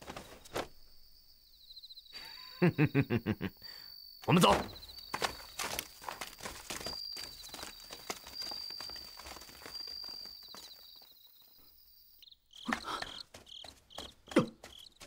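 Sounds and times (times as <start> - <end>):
cricket chirping in pulses: 0.0 - 15.0
crickets trilling: 0.0 - 15.0
footsteps on dry ground: 4.3 - 11.5, 12.6 - 15.0.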